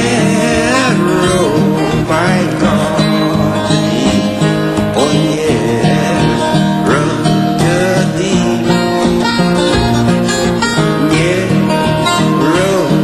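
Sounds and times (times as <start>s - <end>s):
fingerpicked acoustic guitar: 0.0s - 13.0s.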